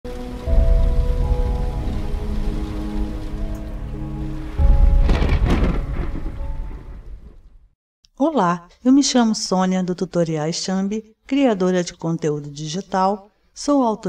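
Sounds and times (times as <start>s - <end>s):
held synth chords: 0.1s - 6.7s
rain: 0.1s - 7.6s
deep rumble: 0.3s - 7.7s
thunder-like crash: 0.4s - 7.7s.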